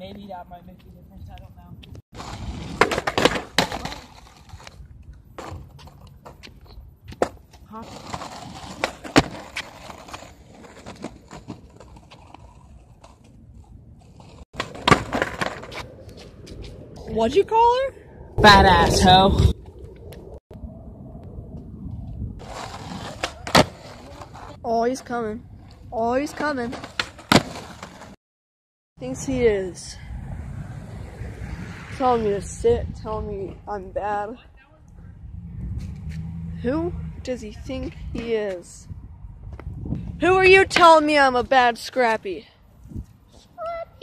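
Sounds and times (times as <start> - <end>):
skateboard wheels rolling on concrete: 0.0 - 20.4, 21.3 - 28.2, 29.0 - 44.0
skateboard clacking on pavement: 2.7 - 4.7, 14.2 - 16.7, 22.6 - 24.5, 26.3 - 28.1
low outdoor rumble: 29.0 - 41.4.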